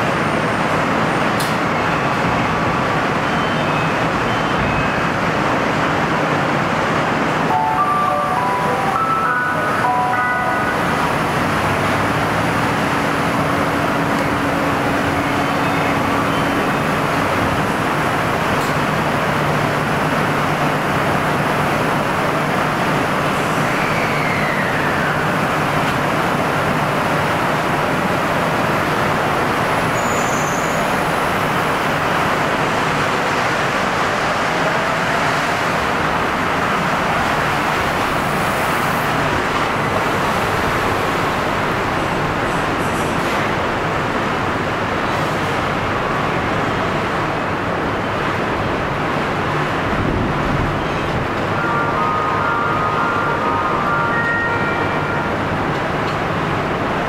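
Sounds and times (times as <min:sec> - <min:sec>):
traffic noise: 0:00.0 - 0:57.0
chime notes: 0:07.5 - 0:10.8.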